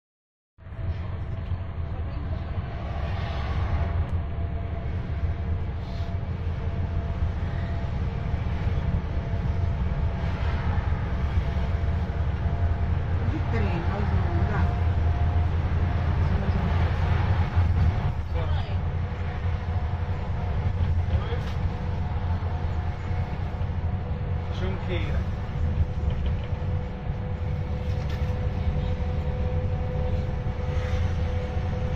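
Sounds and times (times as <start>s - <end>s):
bus engine rumble: 0.6s - 31.9s.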